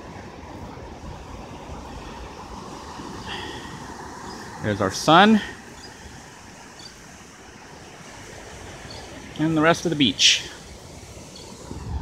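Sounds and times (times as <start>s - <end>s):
ocean surf breaking: 0.0s - 12.0s.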